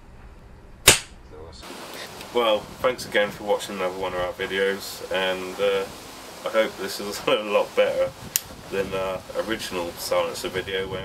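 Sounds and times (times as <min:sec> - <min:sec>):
air pistol shot: 0:00.8 - 0:01.2.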